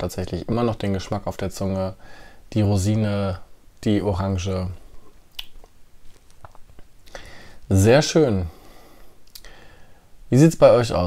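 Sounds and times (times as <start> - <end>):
mouth clicks and lip smacks: 5.3 - 7.3, 9.2 - 9.5.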